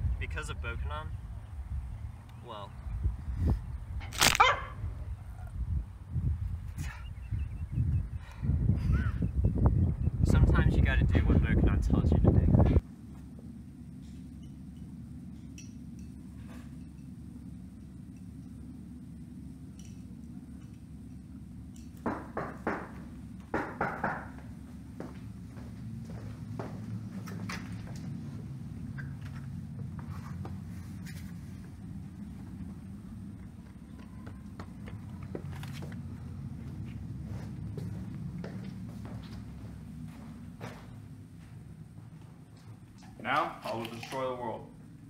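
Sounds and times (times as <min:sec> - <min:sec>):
low rumble: 0:00.0 - 0:43.1
steady low hum: 0:00.0 - 0:45.0
bark-like yelp: 0:04.4 - 0:04.8.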